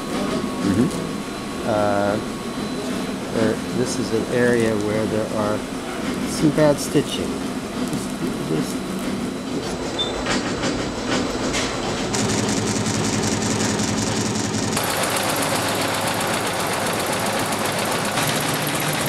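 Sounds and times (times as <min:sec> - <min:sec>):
embroidery machines stitching: 0:12.1 - 0:19.0.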